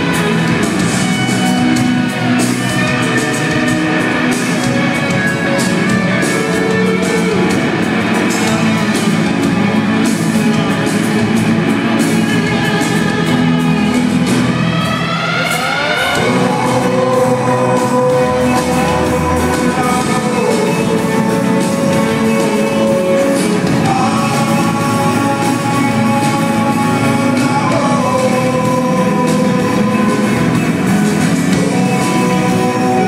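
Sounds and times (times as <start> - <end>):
rock band playing live: 0.0 - 33.0.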